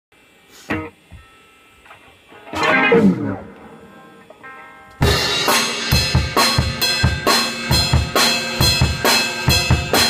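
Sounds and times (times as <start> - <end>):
electric guitar chords: 0.6 - 10.0.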